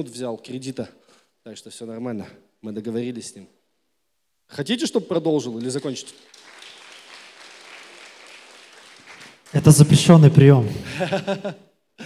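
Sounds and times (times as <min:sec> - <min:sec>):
audience applauding: 0:05.4 - 0:10.2.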